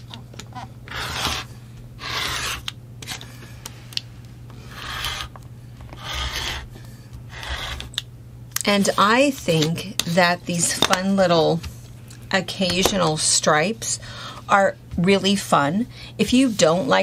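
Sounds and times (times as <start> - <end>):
rotary cutter cutting fabric: 0.9 - 2.7, 4.7 - 5.3, 6.0 - 6.7, 7.3 - 8.0.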